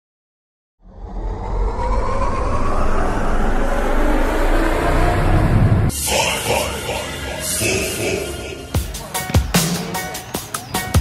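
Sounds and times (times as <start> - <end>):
rumbling whoosh sound effect: 0.8 - 5.9
deep bass drone: 0.8 - 8.9.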